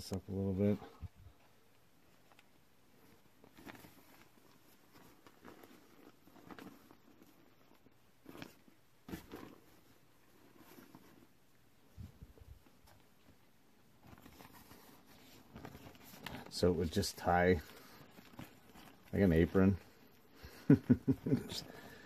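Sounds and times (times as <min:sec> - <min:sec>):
plastic costume rustling: 0:00.9 - 0:22.0.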